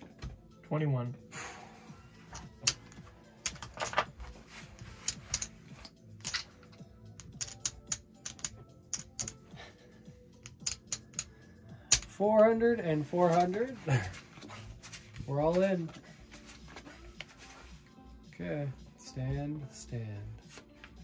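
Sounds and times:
casino chips stacking: 0:02.3 - 0:04.1, 0:04.8 - 0:09.5, 0:10.4 - 0:11.3, 0:11.9 - 0:12.1
playing cards clicking: 0:02.3 - 0:04.1, 0:04.8 - 0:09.4, 0:10.4 - 0:11.3.

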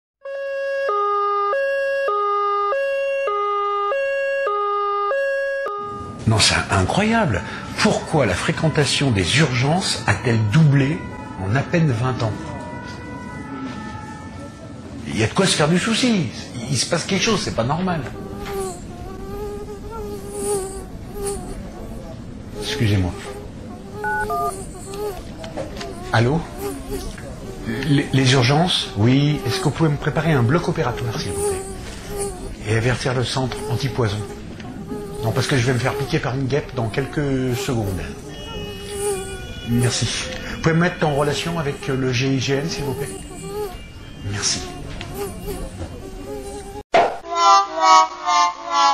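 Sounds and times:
two-tone emergency siren: 0:00.2 - 0:06.2, 0:08.4 - 0:15.0, 0:47.3 - 0:48.9
wasp buzzing: 0:17.3 - 0:46.9
phone keypad tones: 0:24.0 - 0:24.5.

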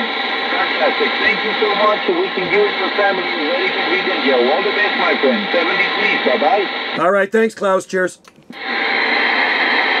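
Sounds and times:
radio static hiss: 0:00.0 - 0:07.9, 0:08.5 - 0:10.0.

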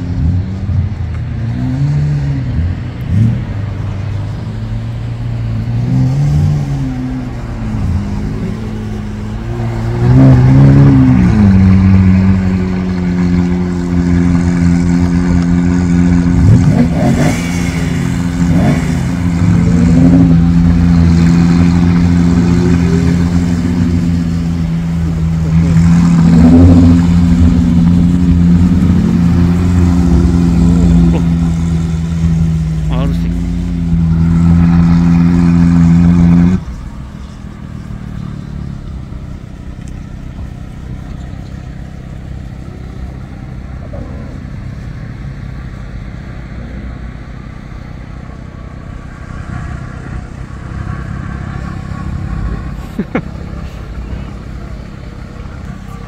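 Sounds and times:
sports car engines revving: 0:00.0 - 0:56.0.

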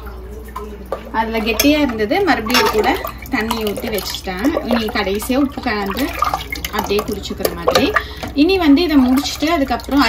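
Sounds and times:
woman talking: 0:01.1 - 0:10.0.

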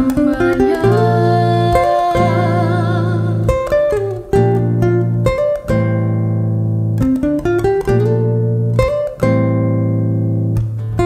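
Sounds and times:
fingerpicked nylon-string guitar: 0:00.0 - 0:11.0.

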